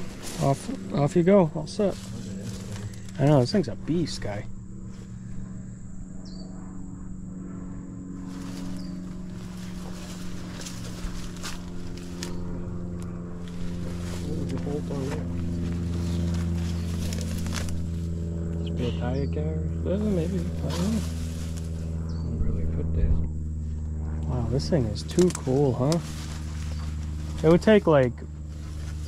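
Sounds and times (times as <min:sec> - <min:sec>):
low mechanical hum: 0:00.0 - 0:29.0.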